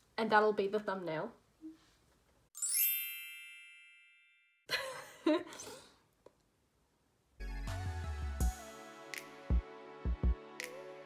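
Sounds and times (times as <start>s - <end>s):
bright chime ringing: 2.6s - 4.6s
music: 7.4s - 11.0s.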